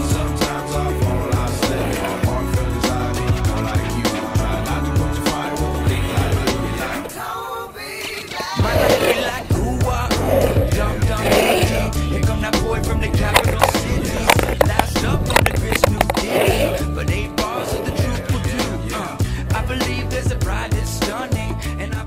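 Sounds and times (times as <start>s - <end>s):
music: 0.0s - 22.0s
skateboard wheels rolling on asphalt: 0.0s - 22.0s
wheels scraping sweeps: 0.0s - 22.0s.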